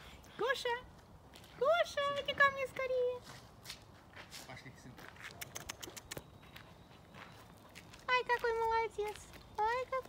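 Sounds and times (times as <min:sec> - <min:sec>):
footsteps on gravel: 0:03.2 - 0:05.4, 0:06.3 - 0:10.0.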